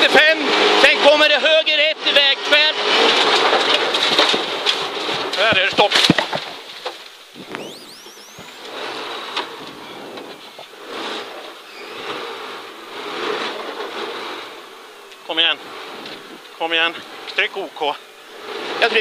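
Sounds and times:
car cabin noise slowing down: 0:07.3 - 0:12.4
rising whistle: 0:07.4 - 0:10.0.

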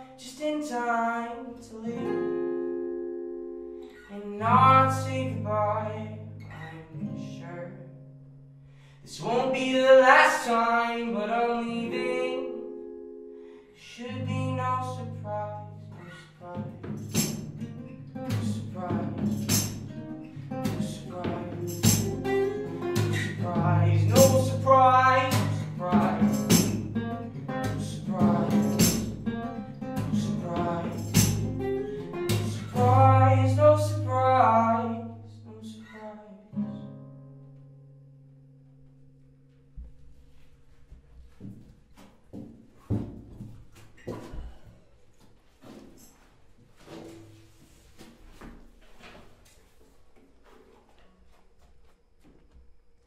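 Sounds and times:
acoustic guitar chords strummed: 0:09.2 - 0:40.2.

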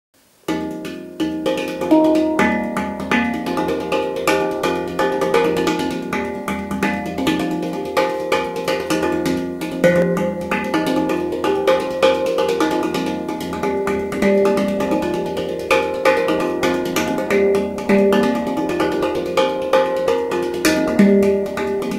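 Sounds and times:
handpan notes ringing: 0:00.5 - 0:21.9.

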